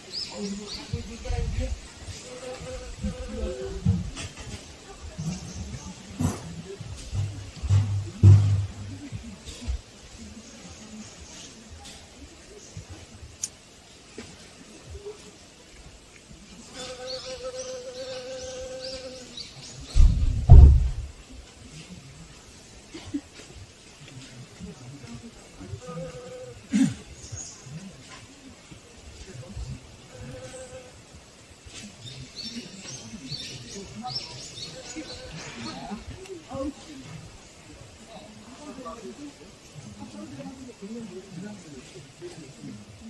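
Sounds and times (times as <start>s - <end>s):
indistinct voices talking: 0.0s - 43.0s
loud low thumps: 7.1s - 9.2s, 19.9s - 21.2s.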